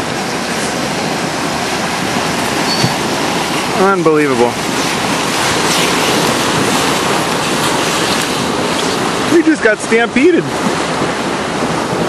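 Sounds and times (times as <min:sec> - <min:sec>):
water splashing: 0:00.0 - 0:12.0.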